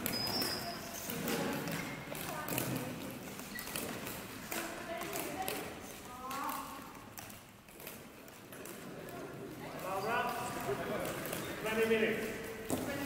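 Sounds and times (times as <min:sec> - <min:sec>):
indistinct voices in a hall: 0:00.0 - 0:13.0.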